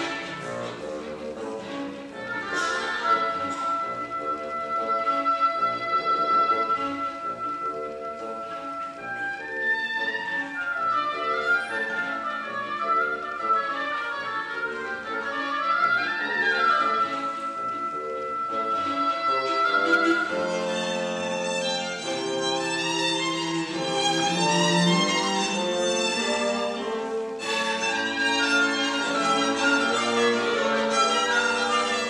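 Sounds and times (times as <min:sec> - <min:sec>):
chamber orchestra accompaniment: 0:00.0 - 0:32.0
oboe melody: 0:00.0 - 0:32.0.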